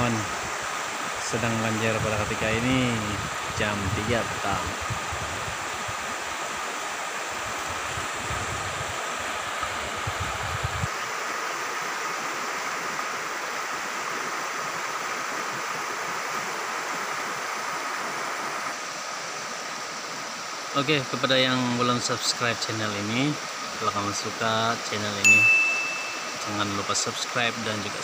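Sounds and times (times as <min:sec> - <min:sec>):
river rushing: 0:00.0 - 0:28.0.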